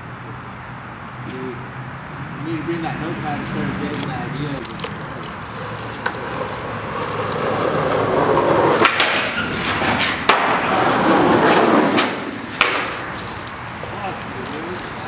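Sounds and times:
skateboard clacking on curb: 3.4 - 15.0
skateboard wheels rolling on asphalt: 3.4 - 15.0.

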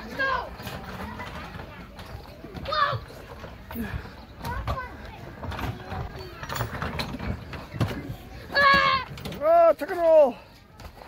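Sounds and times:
faint children's voices: 0.0 - 11.0.

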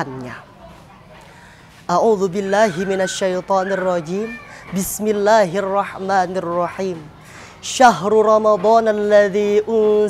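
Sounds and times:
man chanting melodically: 1.9 - 10.0.

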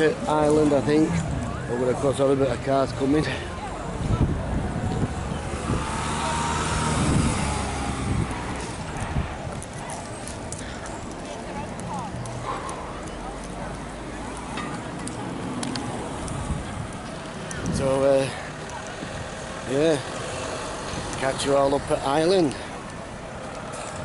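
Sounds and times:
street background noise: 0.0 - 24.0
car driving past: 5.2 - 8.9.

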